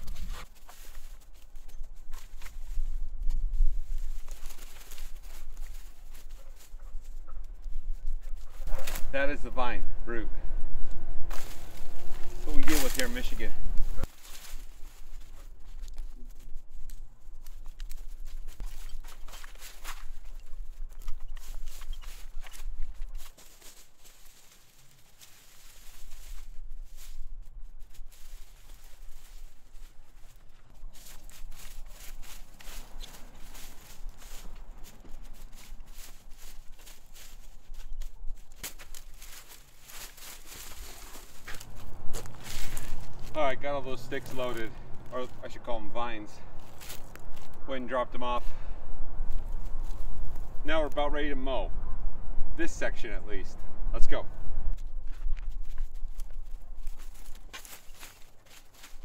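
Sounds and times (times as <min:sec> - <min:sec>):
dry sticks rustling and crackling: 0:00.0 - 0:09.8, 0:10.8 - 0:48.4, 0:49.2 - 0:51.1, 0:54.7 - 0:59.0
low steady rumble: 0:06.4 - 0:17.5.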